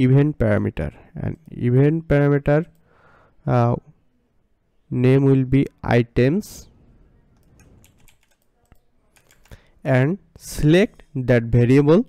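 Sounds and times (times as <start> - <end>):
person speaking: 0.0 - 2.8, 4.9 - 12.0
computer keyboard clicks: 7.4 - 9.7.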